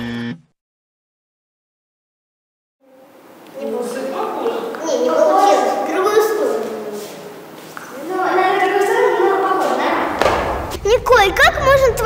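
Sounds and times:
thud: 0:10.0 - 0:10.9.

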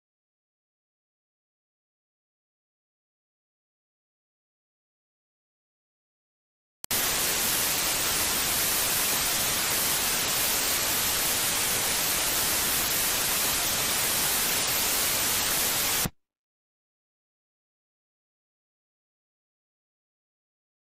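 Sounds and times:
loud static hiss: 0:06.9 - 0:16.1.

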